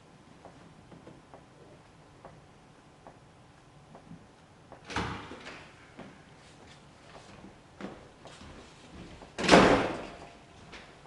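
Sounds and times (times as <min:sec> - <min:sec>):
door shutting with a bang: 0:04.9 - 0:05.5, 0:09.4 - 0:10.2.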